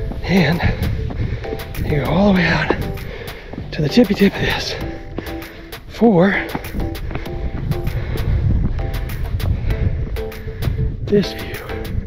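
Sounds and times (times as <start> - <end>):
background music with steady beat: 0.0 - 12.0
wind buffeting microphone: 0.0 - 12.0.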